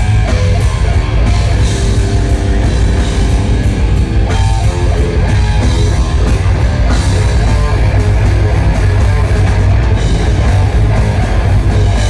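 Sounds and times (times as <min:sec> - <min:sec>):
distorted electric guitar: 0:00.0 - 0:12.0
drum kit: 0:00.0 - 0:12.0
electric bass: 0:00.0 - 0:12.0.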